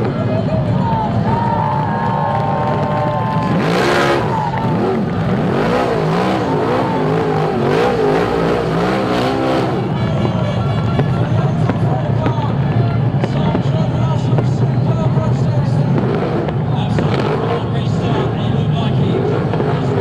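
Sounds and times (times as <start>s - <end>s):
car engine revving up and down: 1.8s - 20.0s.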